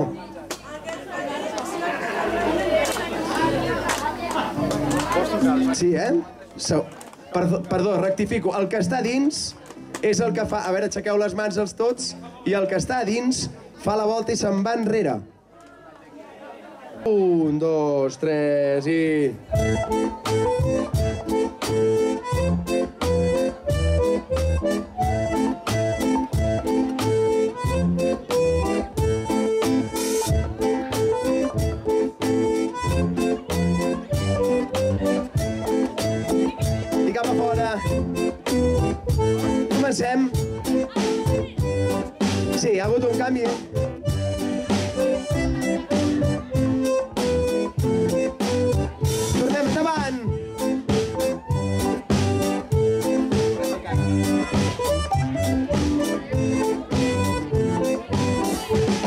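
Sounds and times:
crowd chatting: 0:00.0 - 0:59.0
acoustic guitar: 0:02.1 - 0:15.0, 0:19.4 - 0:59.0
drums: 0:19.5 - 0:59.0.

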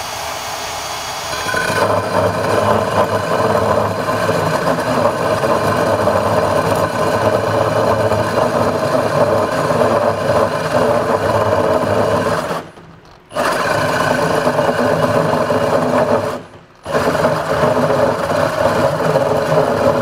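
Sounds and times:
drill with hole saw cutting wood: 0:00.0 - 0:20.0.

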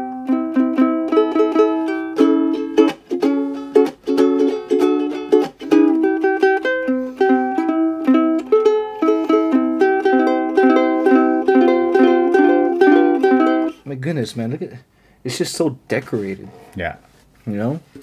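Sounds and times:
ukulele playing: 0:00.0 - 0:13.8.

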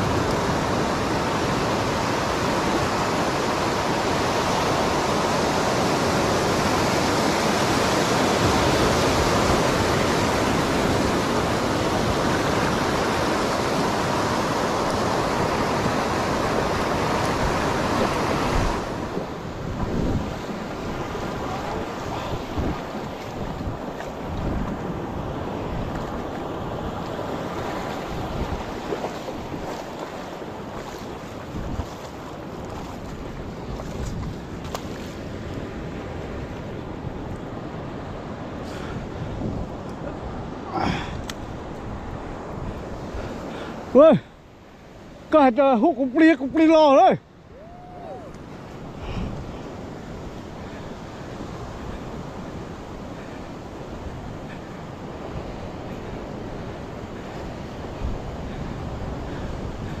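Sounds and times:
surf washing on beach: 0:00.0 - 1:00.0
wind on microphone: 0:04.8 - 0:43.6, 0:47.5 - 1:00.0.

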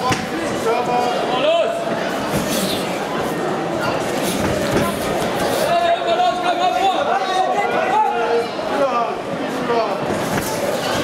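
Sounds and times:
crowd talking and calling out: 0:00.0 - 0:11.0.

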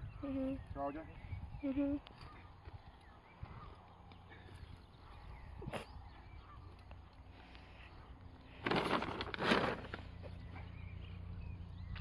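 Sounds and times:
weed puller levering roots from turf: 0:08.5 - 0:10.6.

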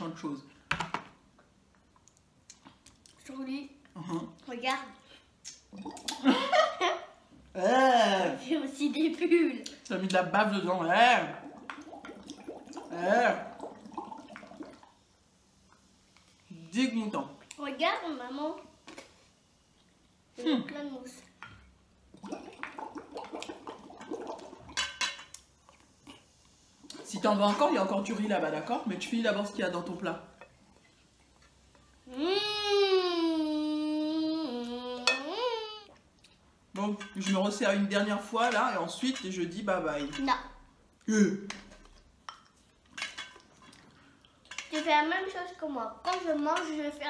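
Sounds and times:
blowing bubbles through a straw: 0:05.7 - 0:06.4, 0:11.3 - 0:15.0, 0:22.1 - 0:24.8
soda slurped through a straw: 0:22.1 - 0:24.7.

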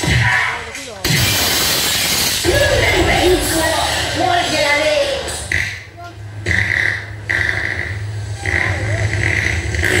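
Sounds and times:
crowd: 0:00.0 - 0:10.0
distorted sound from loudspeakers: 0:00.0 - 0:10.0
harsh bursts of noise: 0:00.0 - 0:10.0
steady low hum: 0:02.4 - 0:10.0.

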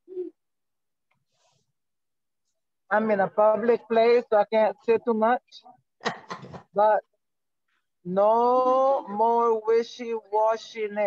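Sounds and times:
person humming mm: 0:00.0 - 0:00.4.

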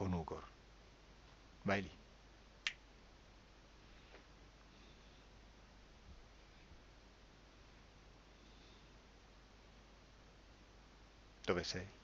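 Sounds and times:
finger snap: 0:02.6 - 0:02.8.

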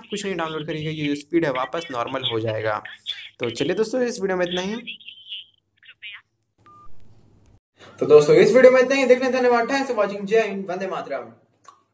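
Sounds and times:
recorded voice prompt: 0:00.0 - 0:06.4
phone beep: 0:06.6 - 0:07.0.

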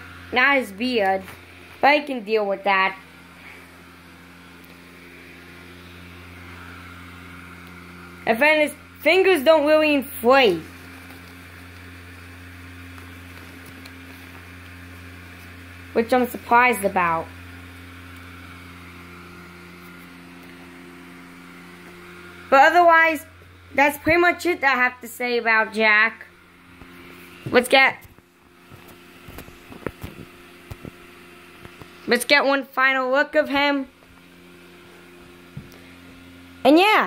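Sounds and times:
blower fan humming: 0:00.0 - 0:37.0.

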